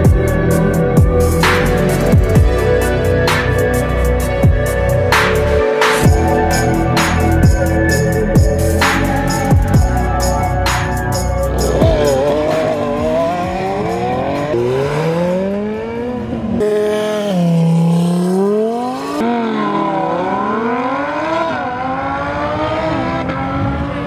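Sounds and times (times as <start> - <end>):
car engine accelerating hard: 9.9 - 24.0.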